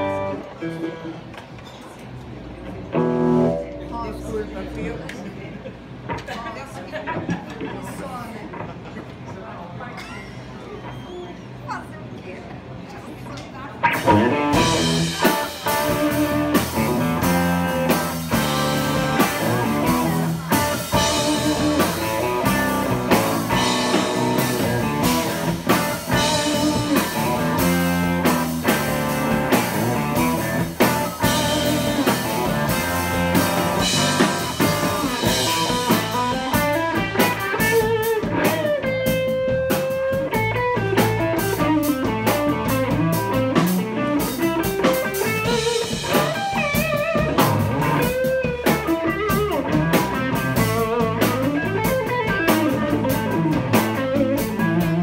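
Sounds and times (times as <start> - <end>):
live blues band: 0.0 - 4.6, 13.7 - 55.0
electric guitar bent notes: 2.3 - 5.0, 13.8 - 55.0.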